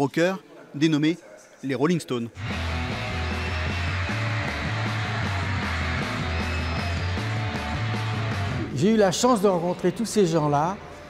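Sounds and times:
rock music: 2.4s - 8.7s
steady bass line: 2.4s - 8.7s.

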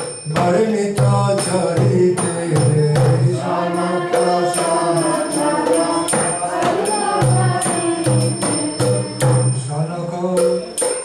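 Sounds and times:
steady percussion beat: 0.0s - 11.0s
man singing devotional chant: 0.3s - 10.7s.

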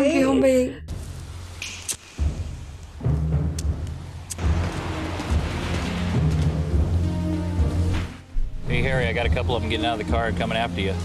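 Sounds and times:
tense background music: 0.9s - 11.0s
traffic hiss: 0.9s - 11.0s
sharp clicks: 1.6s - 2.2s.

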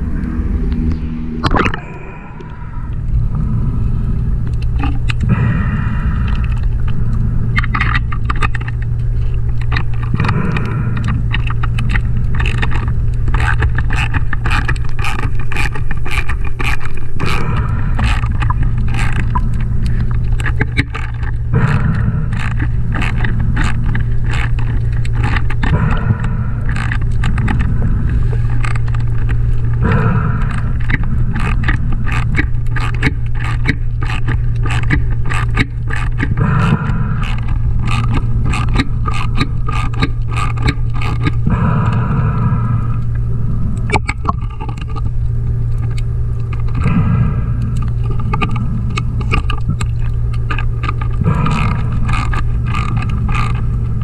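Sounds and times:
low underwater hum: 0.0s - 54.0s
regulator breathing: 0.0s - 54.0s.

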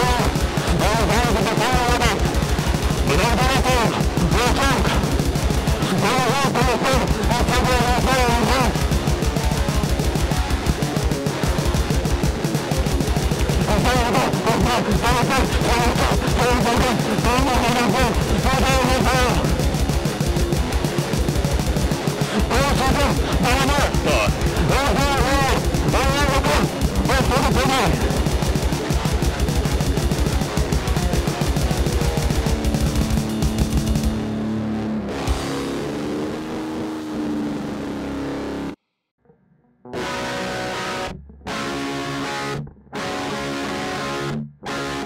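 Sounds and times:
fast steady drumming: 0.0s - 34.4s
heavy metal music: 0.0s - 38.8s, 39.9s - 45.0s
distorted electric guitar: 0.0s - 45.0s.

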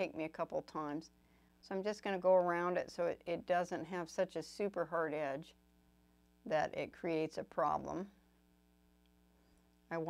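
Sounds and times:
woman speaking: 0.0s - 5.6s, 6.5s - 8.2s
faint electrical hum: 0.0s - 10.0s.

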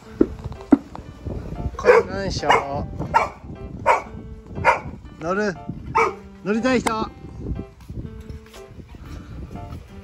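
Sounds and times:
dog barking and yelping: 1.8s - 5.0s, 5.9s - 6.3s.

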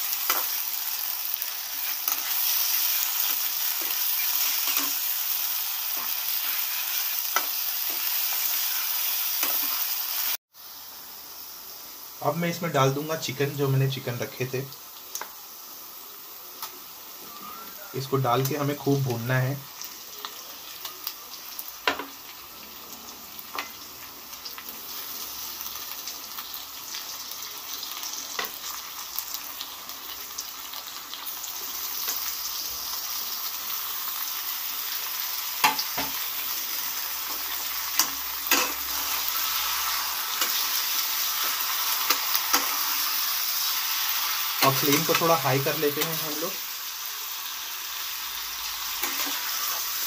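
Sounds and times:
chicken sizzling in a pan: 0.0s - 50.0s.

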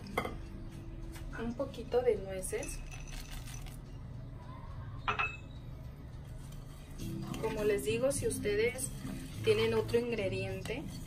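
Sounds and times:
clink against glass bowl: 5.0s - 5.5s.

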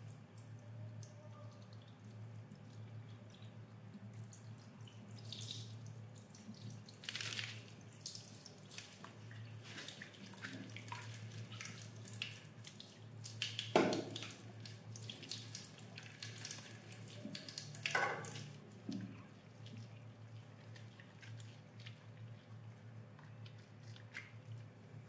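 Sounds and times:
low steady hum: 0.0s - 25.0s
tap water splashing in sink: 13.3s - 16.6s, 17.2s - 19.2s.

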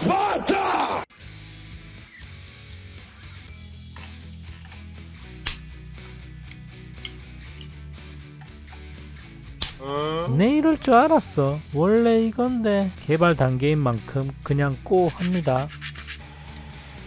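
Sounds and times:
music with low held notes: 2.0s - 17.0s.

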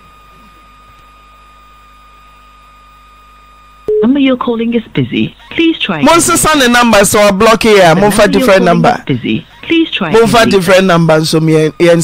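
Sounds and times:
telephone line hiss and hum: 0.0s - 12.0s
busy-number recording: 3.5s - 12.0s
thin high tone: 8.0s - 9.0s.

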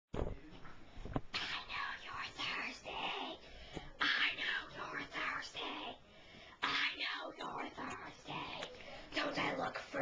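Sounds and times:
person whispering: 1.4s - 10.0s.

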